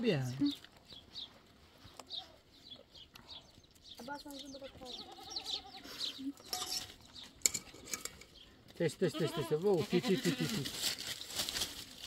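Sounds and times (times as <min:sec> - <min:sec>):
young goat bleating: 0:04.8 - 0:06.4, 0:09.0 - 0:10.8.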